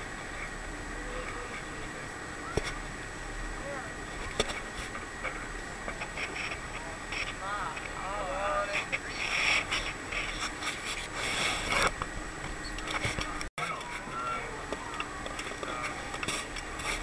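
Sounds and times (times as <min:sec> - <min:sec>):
rough rasping microphone noise: 0:00.0 - 0:17.0.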